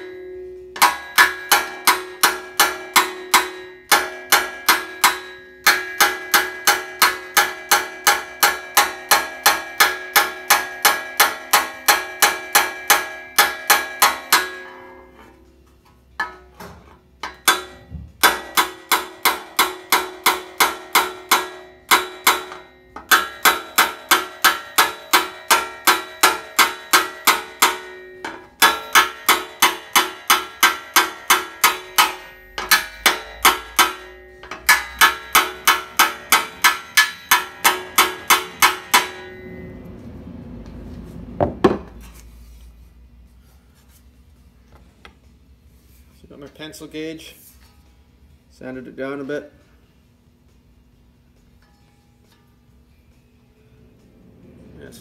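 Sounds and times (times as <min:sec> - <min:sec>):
hammer ringing on steel: 0:00.0 - 0:15.5, 0:17.2 - 0:40.2.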